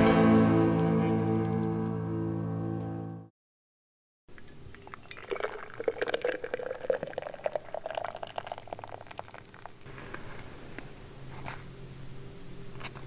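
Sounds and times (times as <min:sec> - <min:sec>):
water pouring into a mug: 0:04.7 - 0:09.9.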